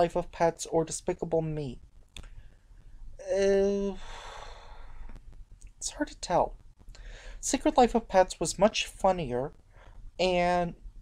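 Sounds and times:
person speaking: 0.0s - 1.8s, 3.2s - 4.6s, 5.7s - 6.6s, 7.3s - 9.5s, 10.2s - 10.9s
person sighing: 3.6s - 5.1s.

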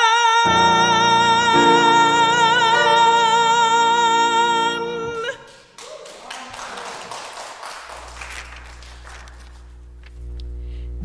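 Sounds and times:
woman singing gospel with vibrato: 0.0s - 5.5s
people clapping: 5.2s - 9.8s
steady low hum: 8.8s - 11.0s.

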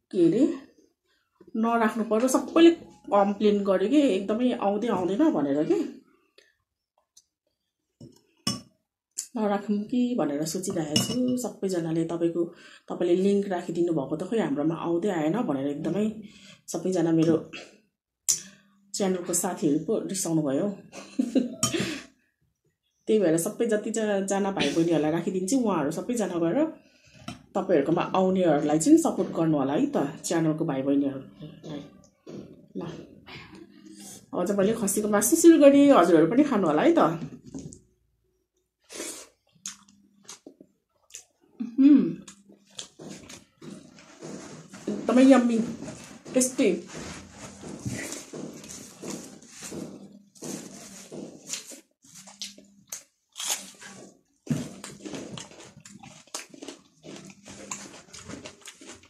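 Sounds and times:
woman talking: 0.0s - 0.7s, 1.6s - 6.0s, 9.2s - 17.6s, 19.0s - 21.4s, 23.1s - 26.8s, 27.6s - 32.0s, 32.7s - 33.1s, 34.3s - 37.4s, 44.8s - 47.1s
wet chewing and lip-smacking: 54.6s - 59.0s.

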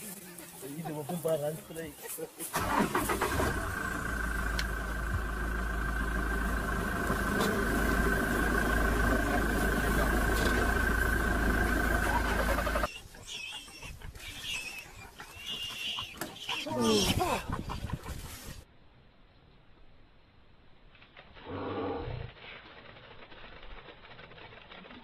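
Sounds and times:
vehicle engine idling: 2.5s - 12.9s.

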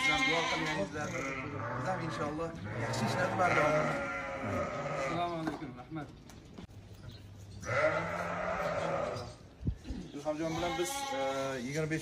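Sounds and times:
ram bleating: 0.0s - 5.5s, 7.6s - 9.4s, 10.3s - 11.6s.

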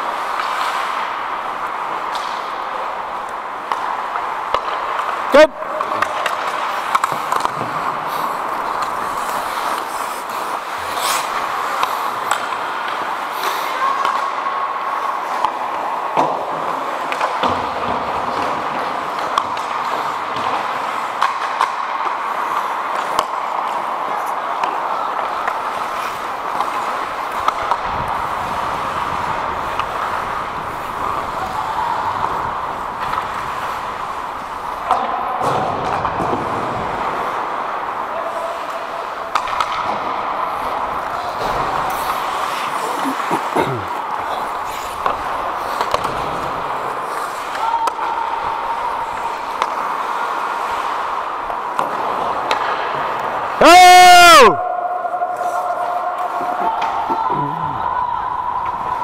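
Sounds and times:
skates scraping on ice: 0.0s - 53.8s, 54.4s - 59.0s
hockey sticks and puck clacking: 0.0s - 59.0s
indistinct voices: 54.4s - 59.0s.

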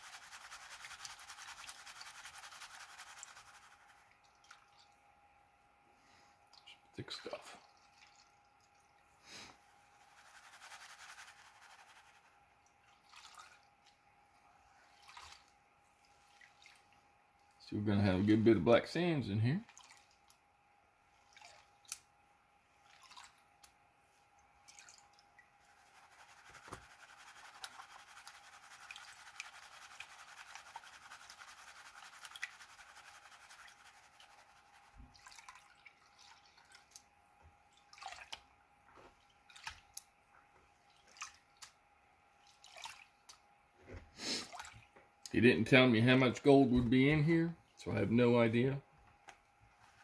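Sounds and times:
water swishing in a tub: 0.0s - 5.4s, 6.5s - 18.3s, 19.5s - 43.6s, 44.3s - 45.0s
water dripping: 4.0s - 5.0s, 7.5s - 9.1s, 19.7s - 20.4s.

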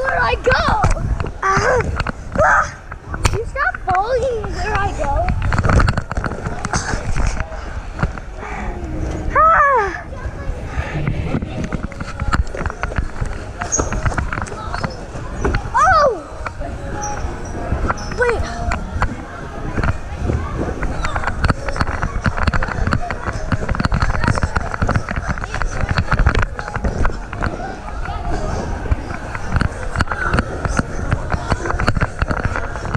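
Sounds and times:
camera thumping on a trampoline: 0.0s - 8.4s, 10.9s - 16.8s, 17.6s - 32.9s
hubbub of voices: 0.0s - 32.9s.

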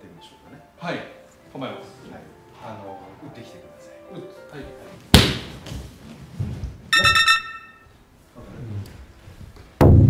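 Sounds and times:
rapid chime-like sound effect: 7.0s - 7.8s.

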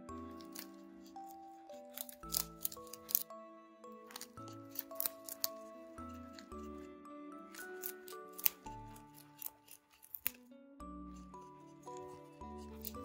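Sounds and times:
background music: 0.0s - 13.0s
rabbit crunching leaf: 0.3s - 3.3s, 4.1s - 5.7s, 7.5s - 10.4s, 12.6s - 13.0s.

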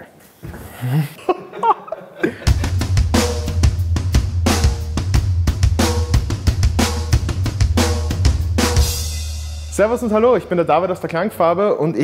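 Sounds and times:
drum kit playing a beat: 2.5s - 11.1s
deep bass: 2.5s - 11.6s.

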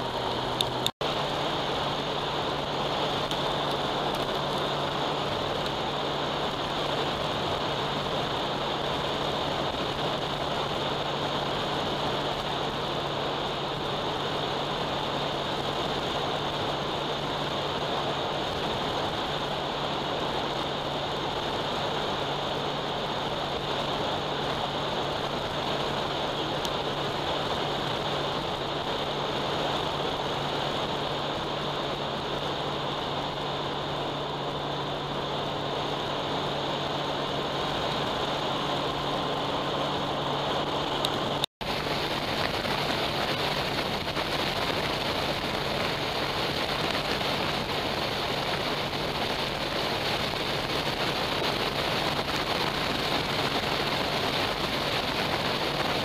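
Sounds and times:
motorcycle engine cruising: 0.0s - 56.0s
wind rush: 0.0s - 56.0s.

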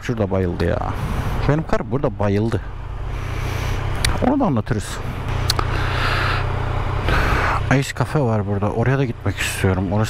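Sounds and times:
motorcycle engine idling: 2.4s - 10.0s.

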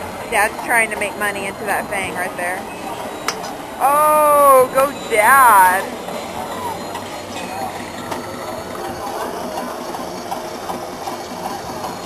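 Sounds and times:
crowd murmur: 0.0s - 12.0s
steady background hum: 0.0s - 12.0s.

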